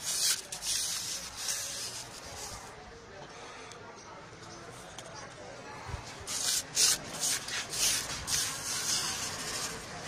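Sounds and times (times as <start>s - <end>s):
spoon scraping in a mortar: 0.0s - 2.7s, 6.3s - 10.0s.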